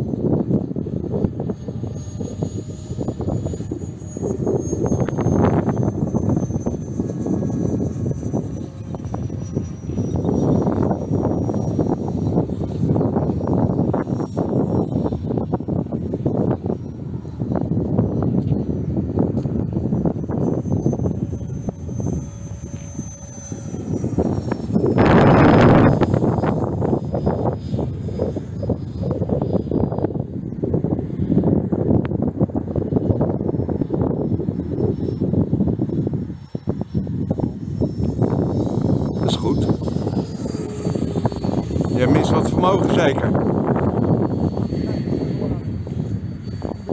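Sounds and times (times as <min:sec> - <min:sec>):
model jet fan whine: 0:00.0 - 0:46.9
rushing air noise: 0:00.0 - 0:46.9.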